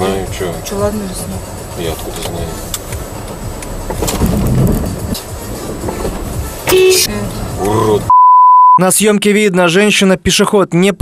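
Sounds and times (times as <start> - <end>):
car engine running: 0.0 - 8.1.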